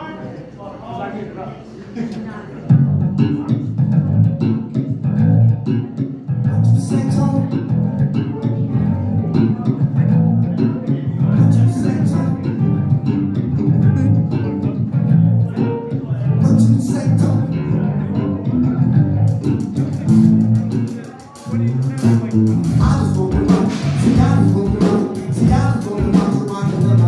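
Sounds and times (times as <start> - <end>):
electric bass guitar: 2.7 - 27.0
live band playing: 2.7 - 27.0.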